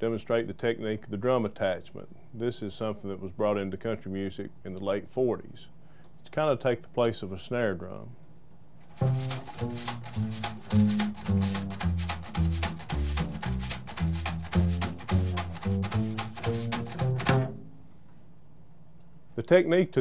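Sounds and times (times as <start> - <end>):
wire brush on drum head: 8.8 - 17.6
walking upright bass: 8.9 - 17.7.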